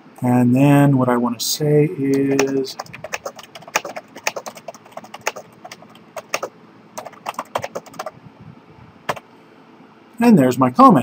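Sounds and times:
typing on computer keyboard: 2.2s - 8.1s.

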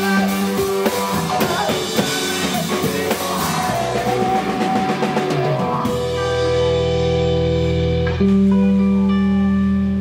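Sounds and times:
drums: 0.0s - 10.0s
electric guitar chords: 0.0s - 10.0s.

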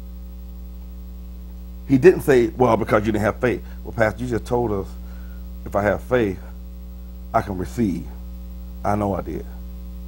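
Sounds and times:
low electrical hum: 0.0s - 10.0s
man's voice: 1.9s - 5.0s, 5.6s - 6.5s, 7.4s - 8.2s, 8.8s - 9.6s.

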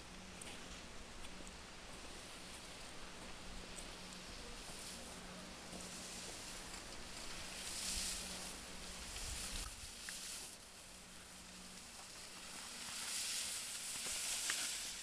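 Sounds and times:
skis scraping over snow: 4.2s - 15.0s.

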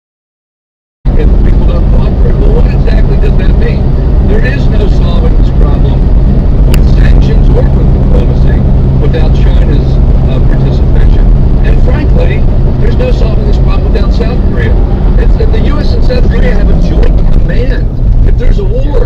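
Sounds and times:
indistinct voices: 1.1s - 19.0s
vehicle engine and road drone: 1.1s - 19.0s.

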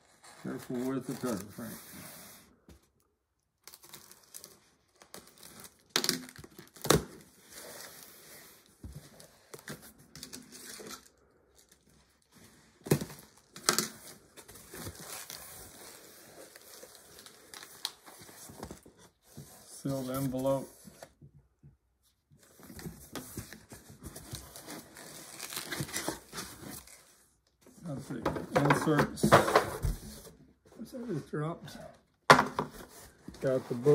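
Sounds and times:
cardboard rubbing and crinkling: 0.0s - 2.4s, 32.8s - 33.9s
packing tape cut and torn: 3.6s - 7.3s.

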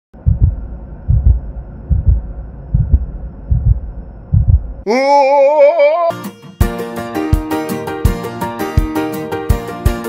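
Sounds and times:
heartbeat double thump: 0.2s - 4.8s.

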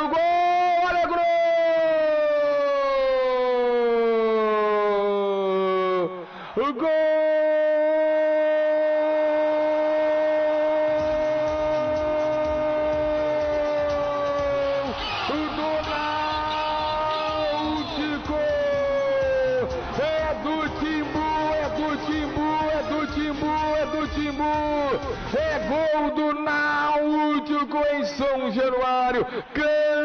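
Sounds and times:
narrator's drawn-out goal cry: 0.0s - 30.0s.

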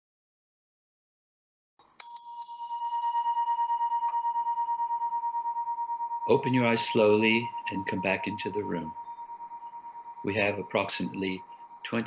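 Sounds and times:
meditation bell ringing: 2.0s - 12.0s.

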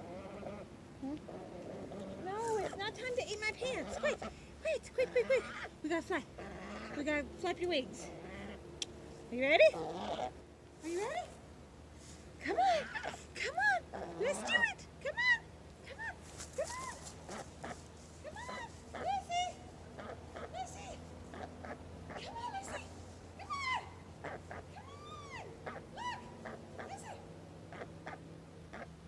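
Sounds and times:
goose honking: 20.0s - 22.9s.

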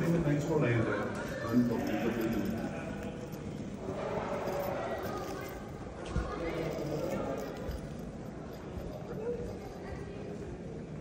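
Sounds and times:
murmur of faint voices: 0.0s - 11.0s.

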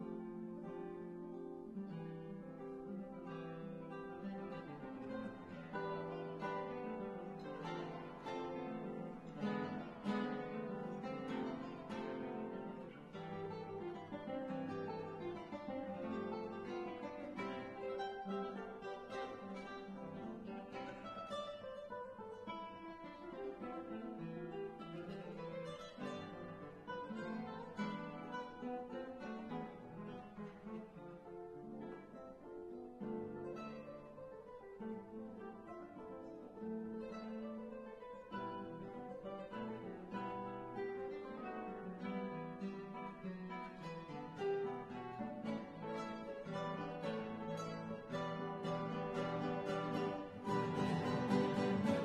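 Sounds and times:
fingerstyle classical guitar: 0.0s - 52.0s.

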